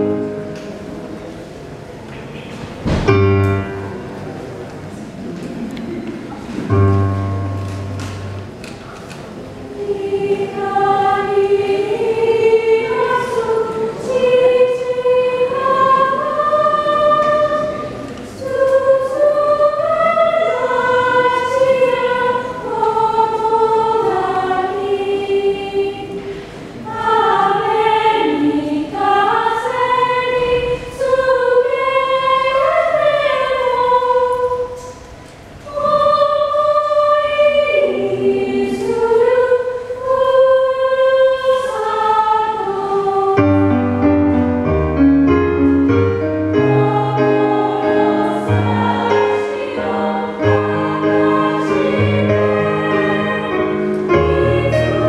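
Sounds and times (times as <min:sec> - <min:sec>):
choir singing slow phrases: 0:03.4 - 0:44.5, 0:46.4 - 0:55.0.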